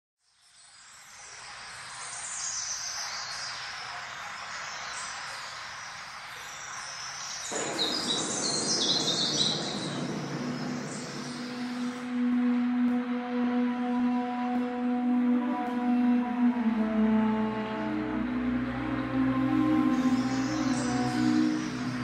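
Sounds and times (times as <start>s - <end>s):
birds chirping: 1.9s - 12.1s, 19.6s - 22.0s
steady rushing background: 6.4s - 12.9s
low held music tone: 6.4s - 22.0s
deep rushing noise: 7.5s - 12.2s.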